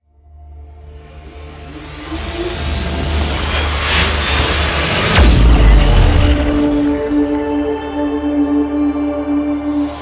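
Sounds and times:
music: 0:00.0 - 0:10.0
swell of noise: 0:00.5 - 0:10.0.

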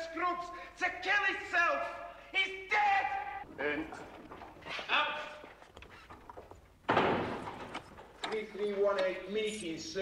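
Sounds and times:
shouted command: 0:00.8 - 0:03.4
heavy cell door banging shut: 0:06.8 - 0:08.2.

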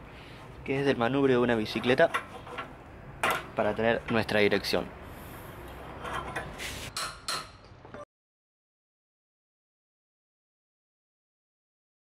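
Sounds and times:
steel tubes scraping and knocking: 0:01.4 - 0:04.4, 0:05.7 - 0:07.7.

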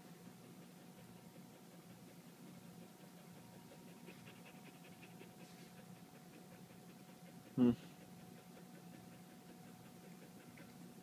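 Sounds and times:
dog panting softly: 0:00.0 - 0:11.0.

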